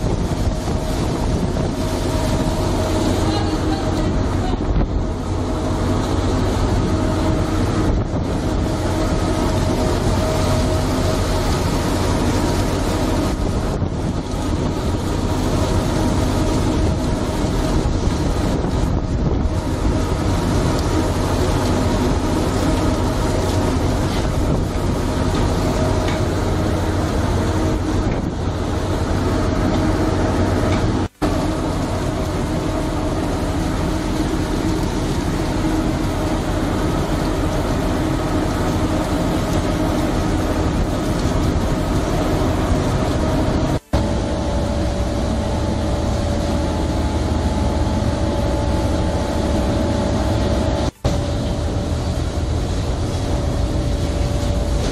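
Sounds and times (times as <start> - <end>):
boat engine and deck machinery: 0.0 - 54.9.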